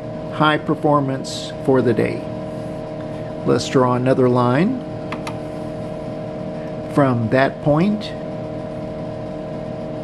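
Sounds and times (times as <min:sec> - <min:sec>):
computer humming: 0:00.0 - 0:10.0.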